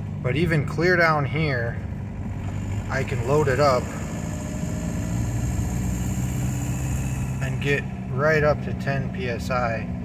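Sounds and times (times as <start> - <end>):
diesel engine accelerating: 0.0 - 10.0.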